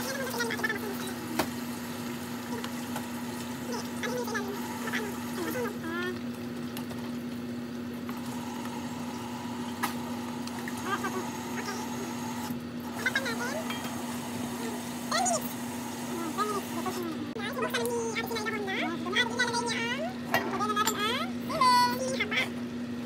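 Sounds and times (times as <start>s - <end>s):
steady hum: 0.0s - 23.0s
food simmering in a pan: 0.3s - 12.8s.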